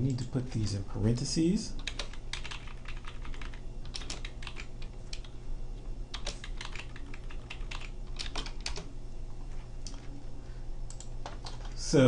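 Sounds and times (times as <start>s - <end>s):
low steady hum: 0.0s - 12.0s
keyboard keystrokes clicking: 1.8s - 5.3s, 6.1s - 8.9s.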